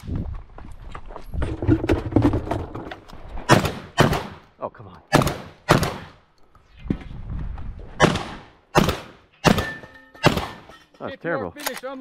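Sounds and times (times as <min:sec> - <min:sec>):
shotgun shots: 0:03.5 - 0:04.4, 0:05.1 - 0:06.2, 0:08.0 - 0:10.7.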